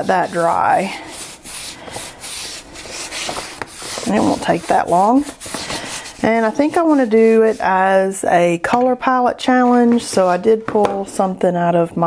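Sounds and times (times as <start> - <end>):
paintbrush rubbing on paper: 0.0 - 8.1.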